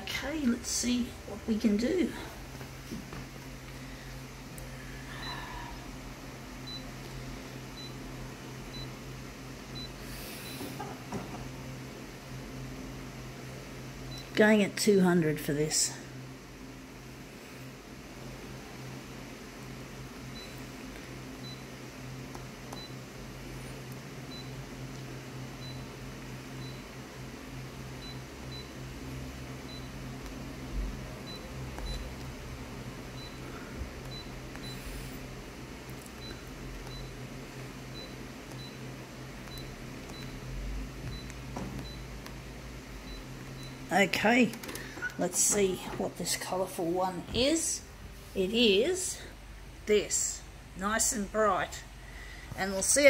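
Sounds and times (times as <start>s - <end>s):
copier humming: 0.0s - 53.0s.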